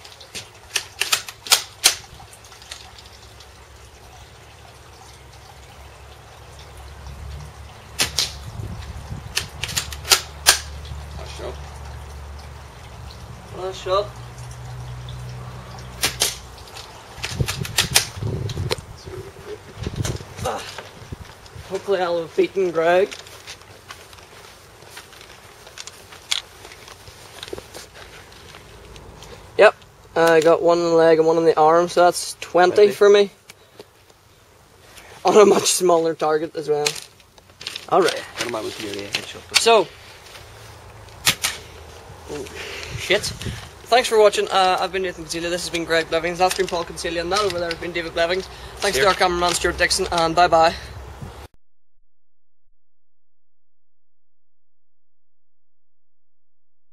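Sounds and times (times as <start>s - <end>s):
quick run of clicks: 9.3s - 10.8s, 16.0s - 18.8s.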